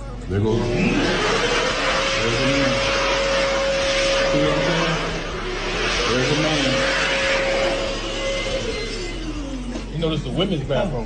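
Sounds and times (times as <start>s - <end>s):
hand dryer winding down: 0.3s - 11.0s.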